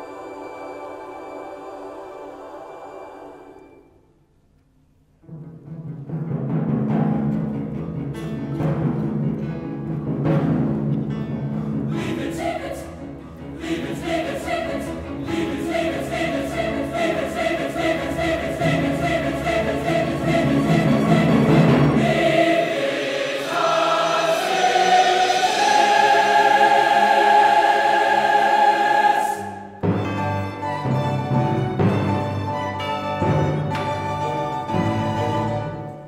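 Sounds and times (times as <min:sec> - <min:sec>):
choir singing with instruments: 0:00.0 - 0:04.2, 0:06.5 - 0:36.0.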